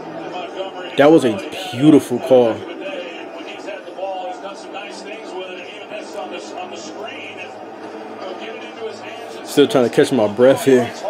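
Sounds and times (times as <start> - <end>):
football commentary on television: 0.0 - 11.0.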